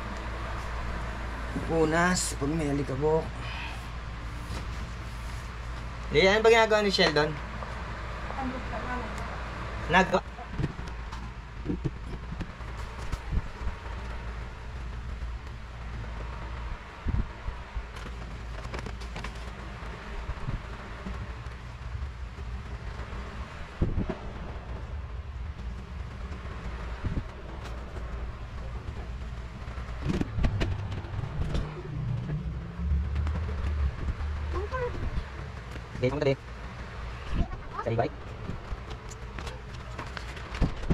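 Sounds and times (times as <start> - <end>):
steady low rumble: 0.0 - 40.9.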